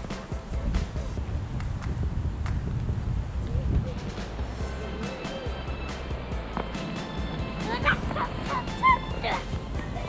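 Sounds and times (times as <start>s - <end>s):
background music: 0.0s - 1.5s, 3.9s - 10.0s
child yelling with effort: 7.6s - 9.3s.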